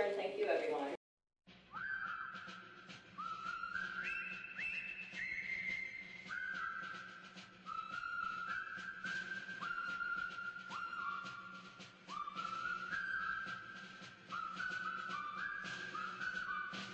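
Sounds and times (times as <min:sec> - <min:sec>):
slow whistled tune: 0:01.5 - 0:16.9.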